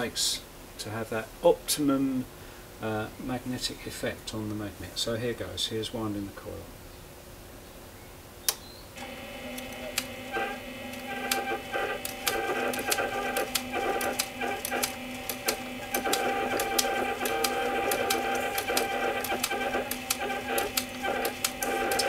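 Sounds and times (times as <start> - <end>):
lathe motor hum: 9.0 - 22.0
irregular ticking clicks: 9.5 - 22.0.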